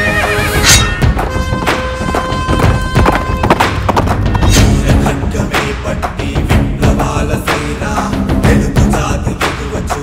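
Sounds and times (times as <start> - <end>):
loud dramatic song: 0.0 - 10.0.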